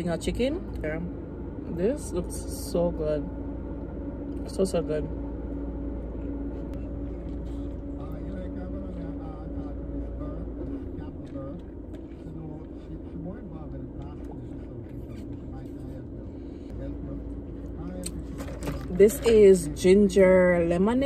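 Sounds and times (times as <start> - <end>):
car idling inside cabin: 0.0 - 21.0
low rumble: 0.0 - 21.0.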